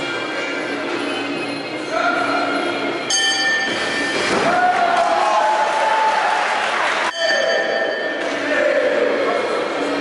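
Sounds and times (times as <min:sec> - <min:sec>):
steady ringing tone: 0:00.2 - 0:04.3, 0:07.1 - 0:08.8
bright high bell ring: 0:03.1 - 0:04.3, 0:07.1 - 0:08.4.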